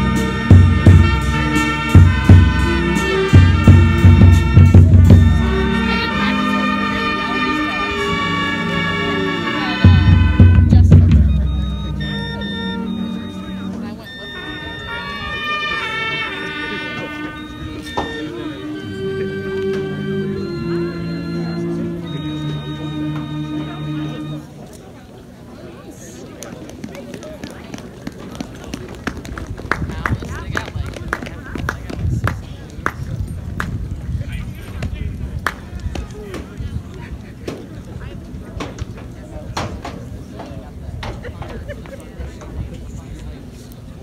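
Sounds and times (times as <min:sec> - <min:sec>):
marching band music: 0:00.0 - 0:24.6
people talking indistinctly: 0:00.0 - 0:44.0.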